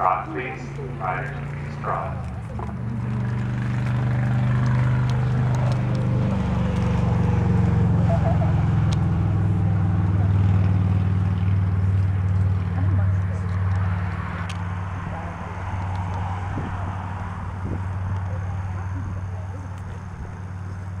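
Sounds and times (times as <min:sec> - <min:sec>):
motor engine humming: 0:00.0 - 0:21.0.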